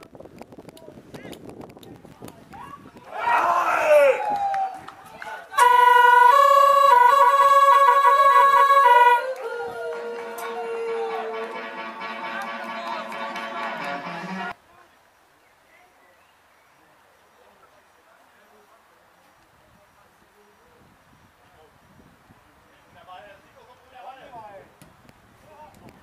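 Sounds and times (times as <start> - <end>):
faint outdoor background: 0.0 - 26.0
held horn-like tone: 5.6 - 14.5.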